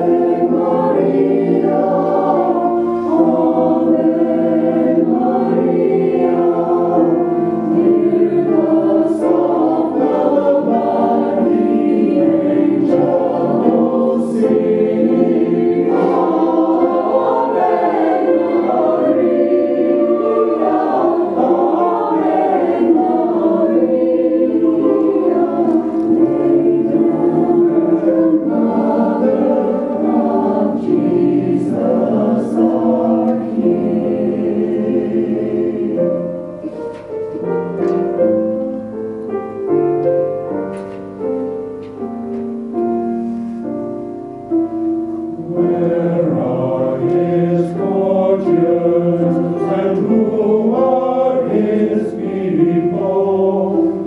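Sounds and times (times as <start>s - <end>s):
mixed choir singing: 0.0s - 39.0s, 45.2s - 54.0s.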